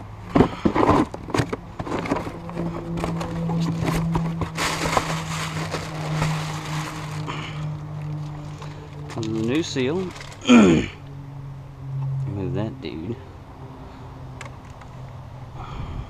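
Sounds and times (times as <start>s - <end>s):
plastic wrapping crinkling: 2.4s - 7.3s.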